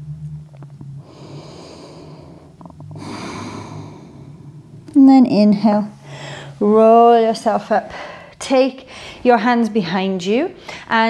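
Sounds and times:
steady low hum: 0.0s - 11.0s
woman breathing: 1.0s - 4.8s, 6.0s - 6.7s, 7.8s - 9.3s, 10.6s - 11.0s.

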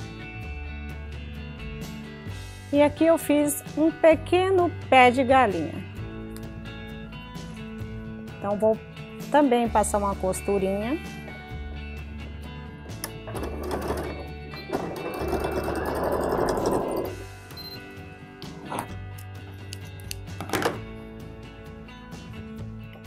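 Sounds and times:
background music: 0.0s - 23.0s
sewing machine stitching: 13.2s - 17.2s.

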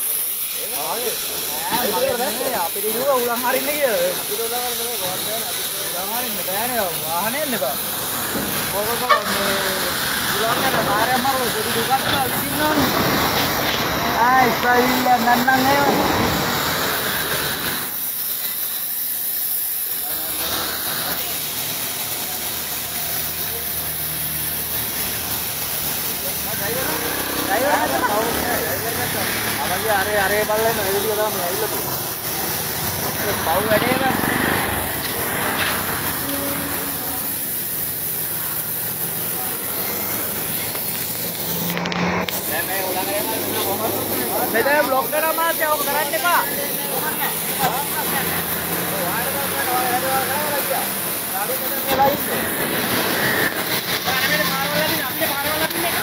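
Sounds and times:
air hissing from tyre valve: 0.0s - 56.0s.

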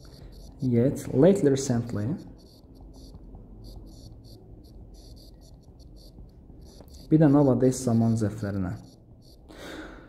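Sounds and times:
stylus scratching on tablet screen: 0.0s - 9.5s
low background hum: 0.0s - 10.0s.

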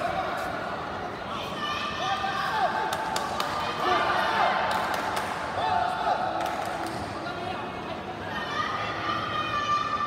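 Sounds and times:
voices calling in echoing hall: 0.0s - 10.0s.

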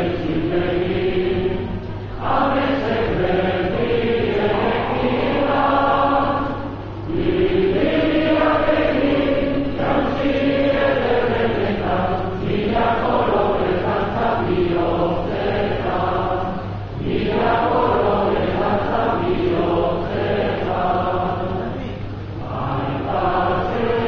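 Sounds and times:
crowd singing together: 0.0s - 24.0s.

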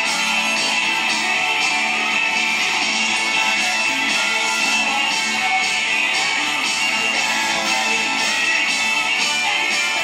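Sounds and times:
rock backing track: 0.0s - 10.0s.

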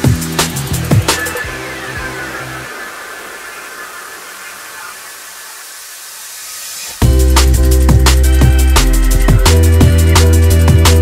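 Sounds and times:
slowly falling tone: 0.0s - 7.1s
hiss of noise: 0.0s - 10.5s
drum and bass track: 0.0s - 11.0s.

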